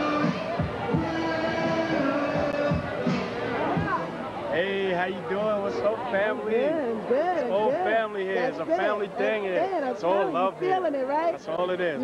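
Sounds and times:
party music with held chords: 0:00.0 - 0:04.3.

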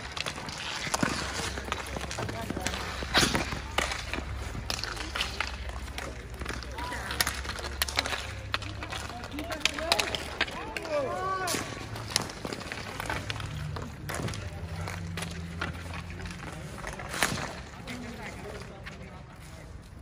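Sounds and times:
hockey sticks clacking: 0:00.0 - 0:20.0
players shouting: 0:09.3 - 0:12.1.

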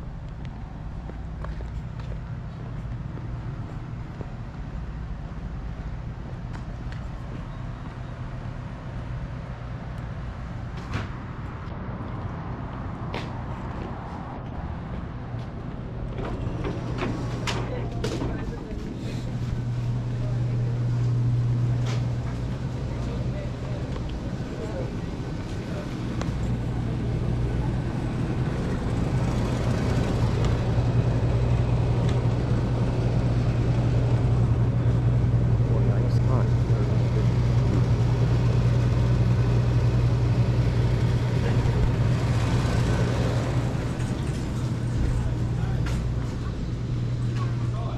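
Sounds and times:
steady low hum: 0:00.0 - 0:47.9
indistinct shoppers' voices: 0:15.4 - 0:47.9.

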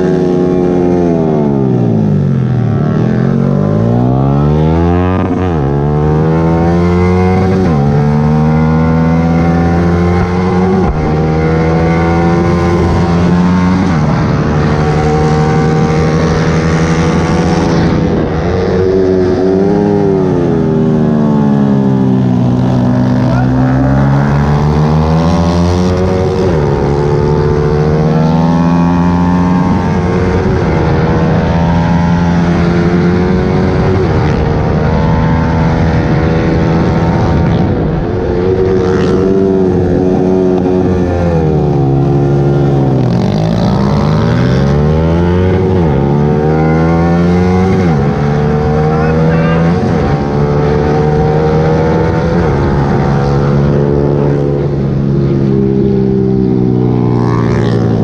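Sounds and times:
motorcycle engine at high revs: 0:00.0 - 0:58.0.

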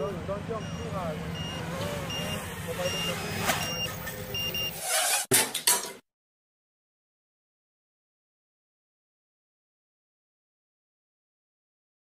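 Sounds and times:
outdoor background noise: 0:00.0 - 0:06.0
short high electronic beeps: 0:00.6 - 0:04.8.

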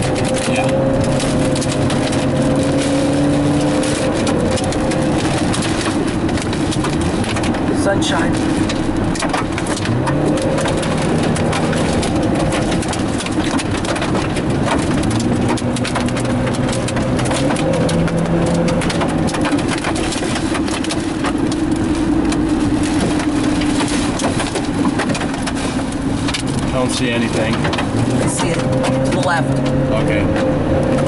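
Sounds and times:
low hum shifting pitch: 0:00.0 - 0:25.0, 0:25.6 - 0:31.0
engine and road noise: 0:00.0 - 0:31.0
rain beating on a car: 0:00.0 - 0:31.0.

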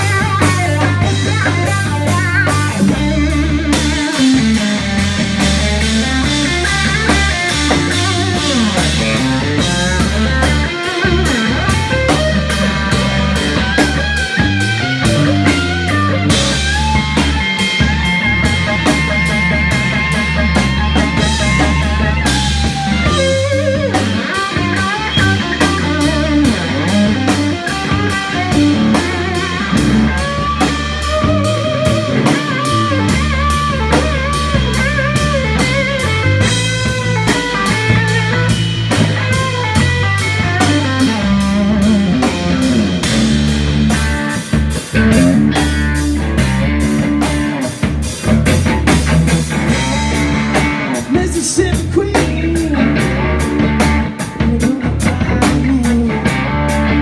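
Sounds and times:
drum kit beat: 0:00.0 - 0:57.0
electric guitar lead: 0:00.0 - 0:57.0.

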